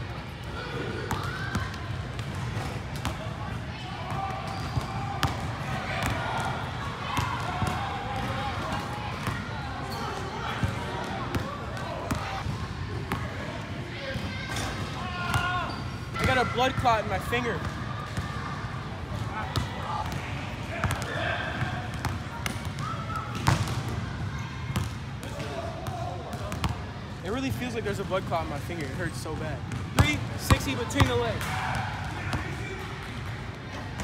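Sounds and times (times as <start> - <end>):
basketballs bouncing on wooden floor: 21.6 - 23.9.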